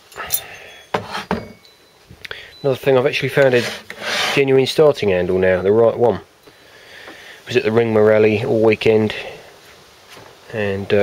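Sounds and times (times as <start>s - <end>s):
metal parts clinking on workbench: 0.1s - 1.6s.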